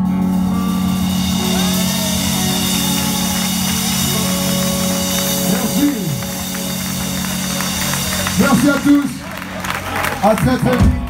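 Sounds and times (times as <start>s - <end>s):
crashing cymbals: 0.0s - 9.4s
sliding pitched notes: 0.0s - 10.4s
rock band sustained chord: 0.0s - 11.0s.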